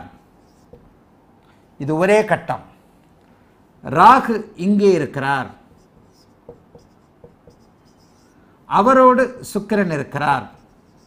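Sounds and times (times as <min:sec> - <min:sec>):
marker squeaks: 0:00.4 - 0:00.9, 0:05.8 - 0:08.4, 0:10.5 - 0:11.0
marker pen on whiteboard: 0:00.4 - 0:01.0, 0:05.6 - 0:08.4, 0:10.1 - 0:11.0.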